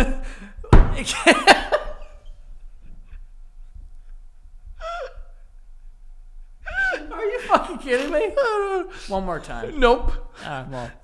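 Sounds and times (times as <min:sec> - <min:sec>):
men laughing breathily: 0:00.0 - 0:03.4, 0:06.6 - 0:09.2.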